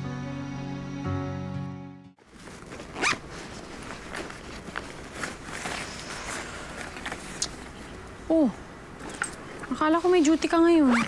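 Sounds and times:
backpack zipper rasping: 0:02.8 - 0:03.3.

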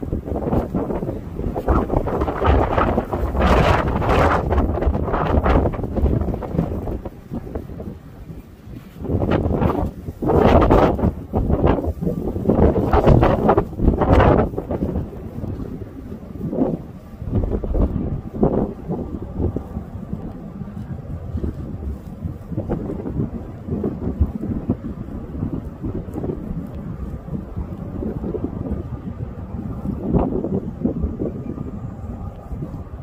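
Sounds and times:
wind buffeting microphone: 0:00.0 - 0:33.0.

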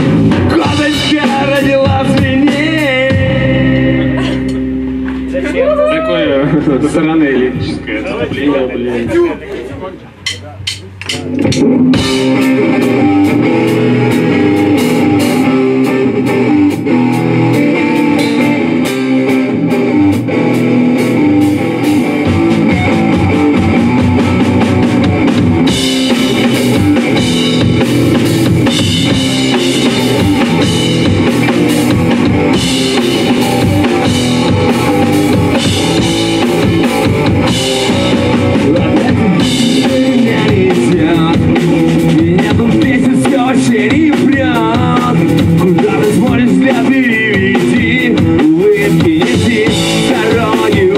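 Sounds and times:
electric guitar: 0:00.0 - 0:08.8, 0:11.0 - 0:50.9
bass guitar: 0:00.0 - 0:50.9
drum kit with cymbal hits: 0:00.0 - 0:50.9.

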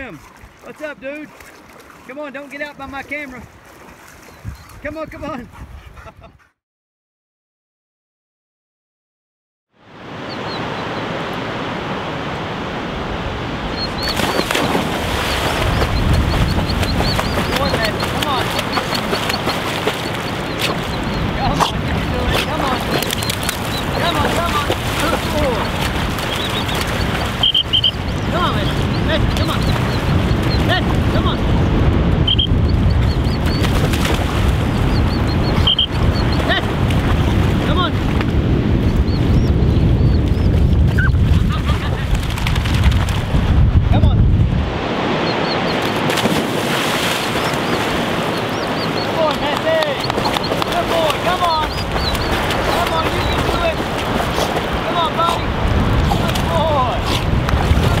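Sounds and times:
wind buffeting microphone: 0:03.4 - 0:06.5, 0:12.9 - 0:58.0
river water rushing: 0:09.9 - 0:31.2, 0:44.7 - 0:58.0
bird chirps: 0:13.8 - 0:14.6, 0:15.3 - 0:21.4, 0:25.4 - 0:30.7, 0:32.3 - 0:33.7, 0:34.8 - 0:36.5, 0:47.4 - 0:49.3, 0:49.9 - 0:53.7.

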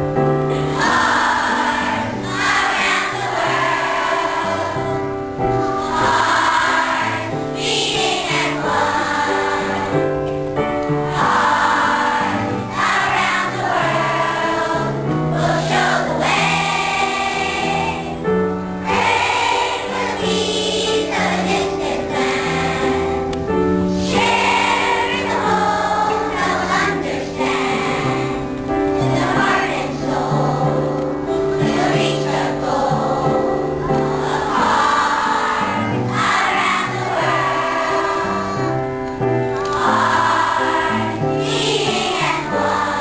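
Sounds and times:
children's choir singing: 0:00.0 - 0:43.0.

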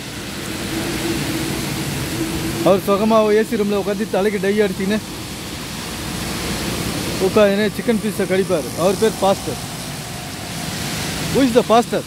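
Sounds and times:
traffic on wet road: 0:00.0 - 0:12.0
man speaking: 0:02.6 - 0:05.0, 0:07.2 - 0:09.7, 0:11.3 - 0:12.0.

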